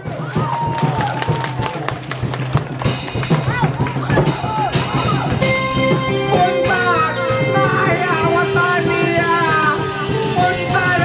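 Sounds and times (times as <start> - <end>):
held melodic note: 4.7 - 11.0.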